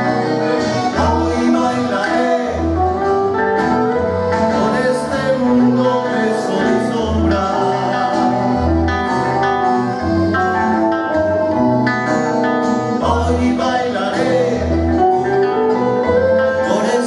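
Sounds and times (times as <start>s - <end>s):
acoustic guitars playing: 0.0s - 17.0s.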